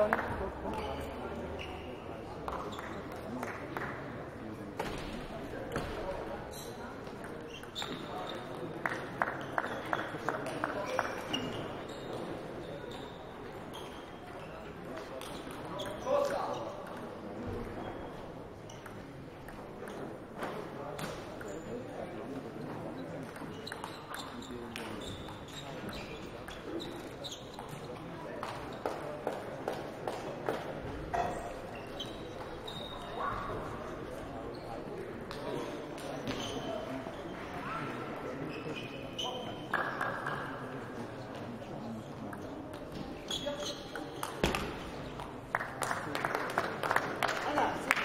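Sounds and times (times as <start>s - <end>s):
murmur of distant voices: 0.0s - 48.0s.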